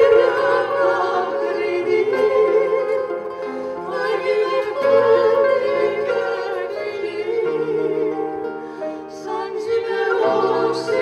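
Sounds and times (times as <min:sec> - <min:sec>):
instrumental accompaniment: 0:00.0 - 0:11.0
women singing together: 0:00.0 - 0:11.0.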